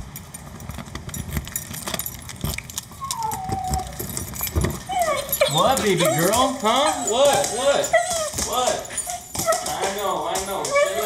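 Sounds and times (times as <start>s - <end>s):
keys jangling in door lock: 0.0s - 11.0s
dog whining: 2.8s - 11.0s.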